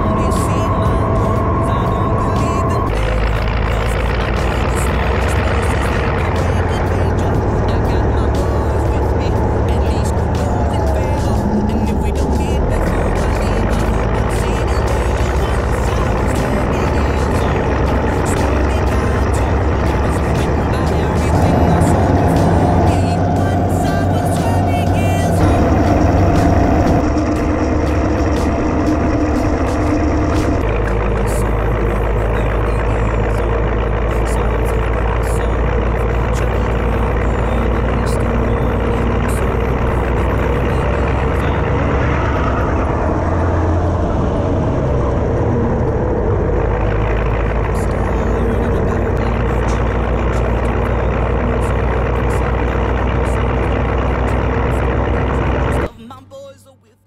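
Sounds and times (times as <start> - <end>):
diesel locomotive engine running: 0.0 - 56.5.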